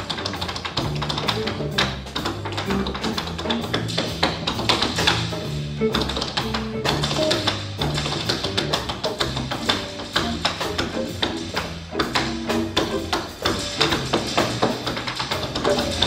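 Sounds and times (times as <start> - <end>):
drum kit: 0.0 - 16.0
sharp percussive taps: 0.0 - 16.0
upright bass line: 0.0 - 16.0.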